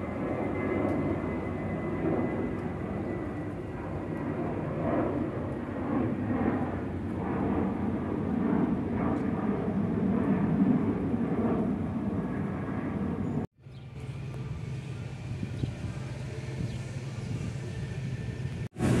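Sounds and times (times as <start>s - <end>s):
jet engines rushing rumble: 0.0s - 19.0s.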